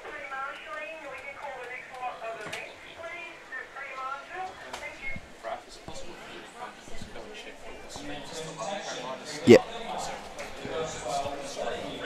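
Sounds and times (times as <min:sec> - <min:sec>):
indistinct background voices: 0:01.4 - 0:12.0.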